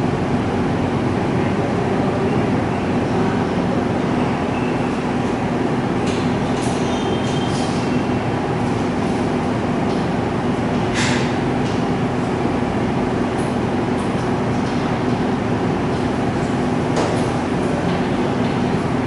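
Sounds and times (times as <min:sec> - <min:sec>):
mechanical humming noise: 0:00.0 - 0:19.0.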